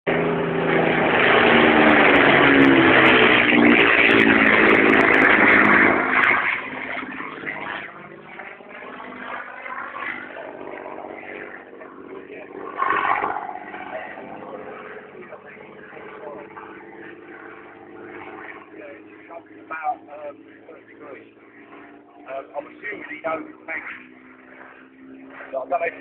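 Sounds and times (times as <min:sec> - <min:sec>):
propeller plane engine passing: 0:00.1 - 0:26.0.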